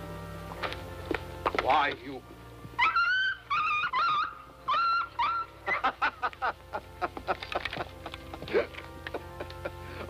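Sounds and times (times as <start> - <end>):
dog whining and yelping: 2.8 - 5.5.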